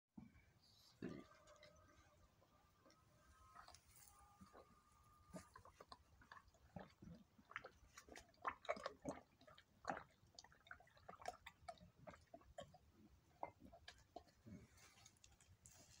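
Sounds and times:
goat mouthing and swallowing: 0:02.8 - 0:15.6.

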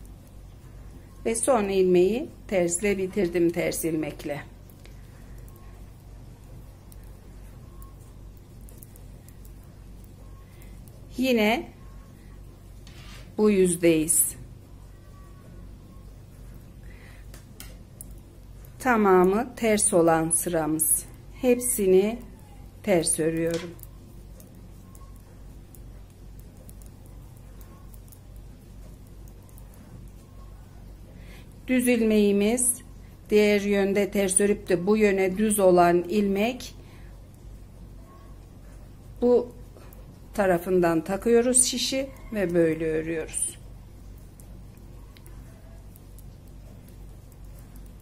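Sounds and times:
knitting needles ticking: 0:00.0 - 0:12.0, 0:15.1 - 0:48.0
steady low hum: 0:00.0 - 0:48.0.

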